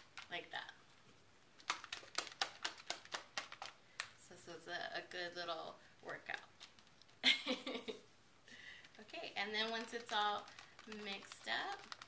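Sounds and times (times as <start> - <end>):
plastic shaker bottle being shaken: 1.6 - 4.2, 6.1 - 7.2, 8.8 - 12.0.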